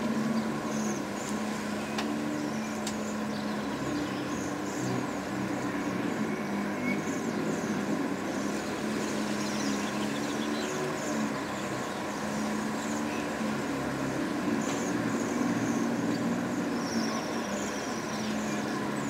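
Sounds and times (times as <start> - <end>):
low engine hum: 0.0 - 19.0.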